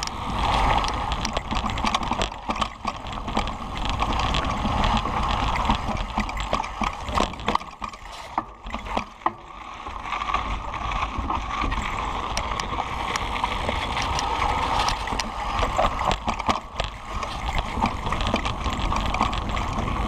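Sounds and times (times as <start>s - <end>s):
bike tyres rolling over dirt: 0.0s - 20.0s.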